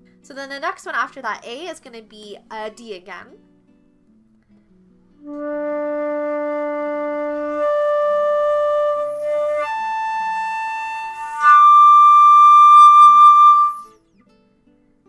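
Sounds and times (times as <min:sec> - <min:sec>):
flute playing: 0:05.2 - 0:14.0.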